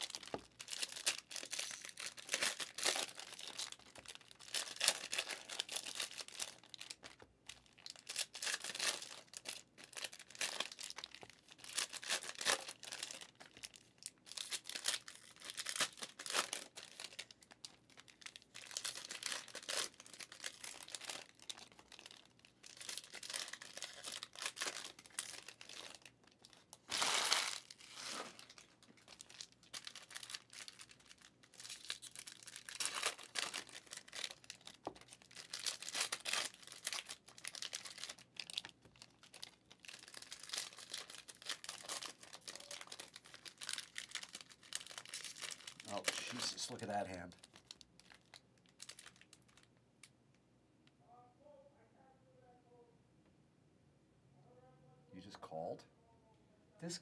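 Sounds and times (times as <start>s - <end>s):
card crinkling burst: 26.8s - 38.7s, 39.9s - 48.2s
trading cards rustling and sliding: 26.9s - 28.4s.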